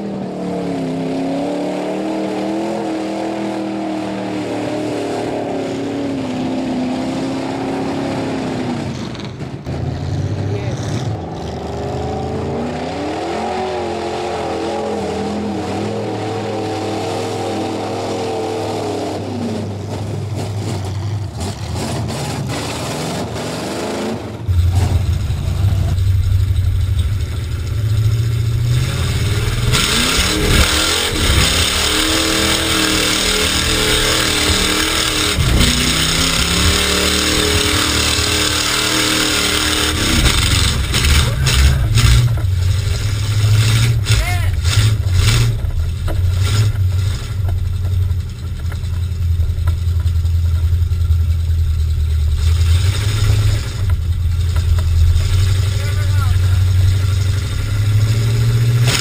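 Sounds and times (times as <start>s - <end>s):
truck engine revving: 0.0s - 59.0s.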